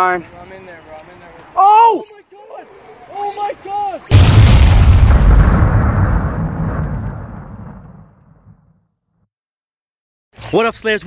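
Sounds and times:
explosion boom and rumble: 4.1 - 8.8.

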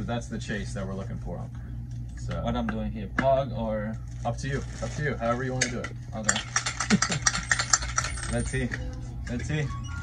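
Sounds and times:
person laughing: 6.8 - 7.7.

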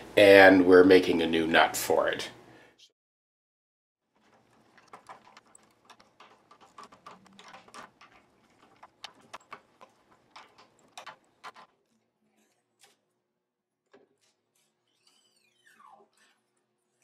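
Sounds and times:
string winder clicking and rattling: 4.2 - 11.8.

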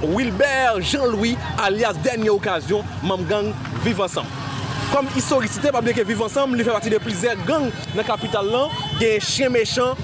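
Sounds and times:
people talking: 0.0 - 4.3, 4.9 - 10.0
street noise: 0.0 - 10.0.

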